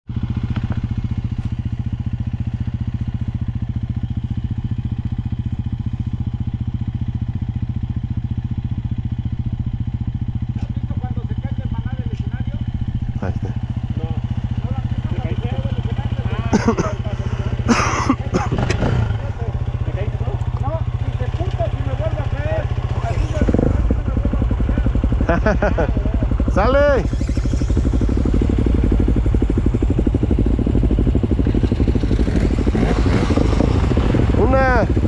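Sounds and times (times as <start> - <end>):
dirt bike engine idling: 0.1 - 35.0.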